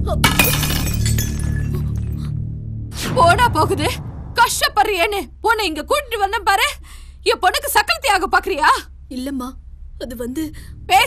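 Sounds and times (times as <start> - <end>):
background music: 0.0 - 11.0
ceramic cup crashing on stone floor: 0.2 - 2.0.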